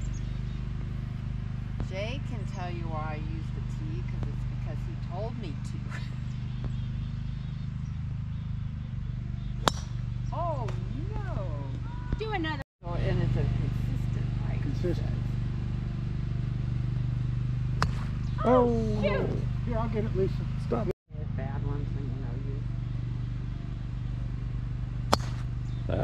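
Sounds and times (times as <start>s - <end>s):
steady low hum: 0.0s - 26.0s
golf driver striking ball: 9.4s - 10.9s, 17.8s - 18.4s, 25.1s - 25.5s.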